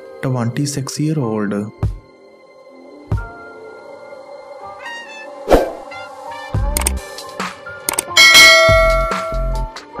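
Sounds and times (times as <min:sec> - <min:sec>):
bell ring sound effect: 0:08.2 - 0:09.5.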